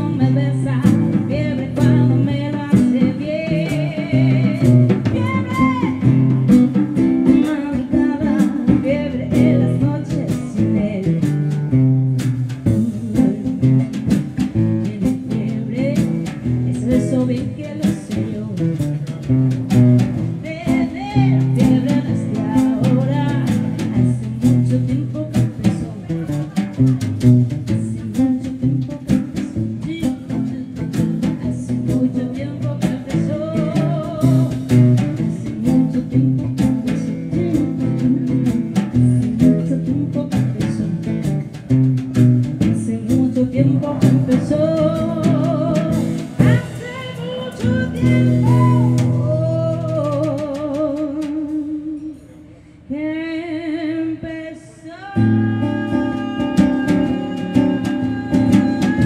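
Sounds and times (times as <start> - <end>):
drums and cymbals: 0.0 - 52.6, 55.3 - 59.0
acoustic guitar: 0.0 - 54.5, 55.1 - 59.0
woman singing: 0.0 - 59.0.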